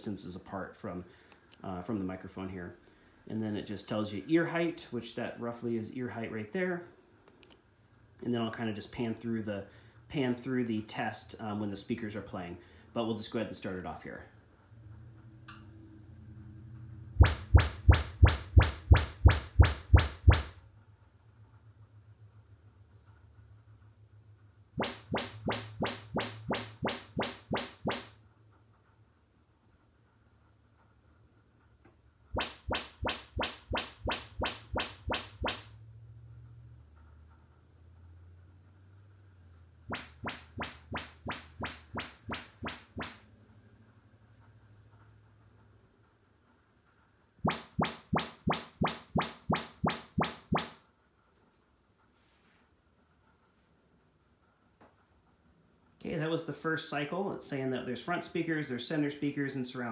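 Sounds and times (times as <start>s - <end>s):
speaker test chirps: 17.2s - 20.5s, 24.8s - 28.0s, 47.5s - 50.7s.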